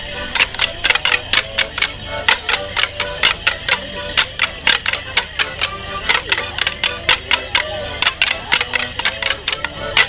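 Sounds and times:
leg bells jingling: 0:00.0 - 0:10.0
melodeon music: 0:00.0 - 0:10.0
wooden sticks clashing: 0:00.3 - 0:10.0.

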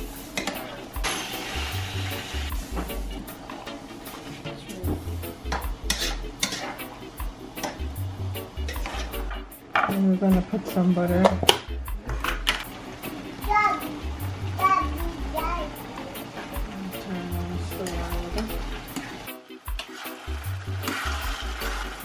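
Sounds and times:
rice hissing in hot pot: 0:00.0 - 0:03.0, 0:18.6 - 0:22.0
background music with bass: 0:00.0 - 0:22.0
metal spoon scraping pot: 0:05.5 - 0:06.9, 0:08.7 - 0:09.2.

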